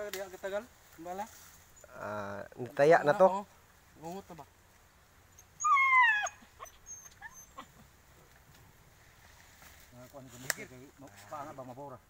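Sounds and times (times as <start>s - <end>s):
dog whining: 5.3s - 7.9s.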